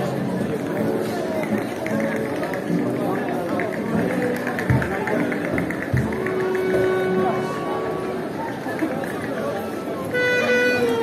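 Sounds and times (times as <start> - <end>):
crowd chatter: 0.0 - 11.0
guitar: 0.0 - 11.0
quick rhythmic clicks: 1.4 - 6.7.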